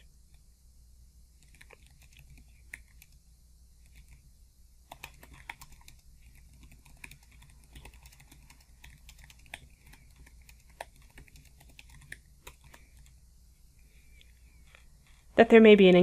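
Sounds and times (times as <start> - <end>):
keyboard typing clicks: 4.9 - 13.0.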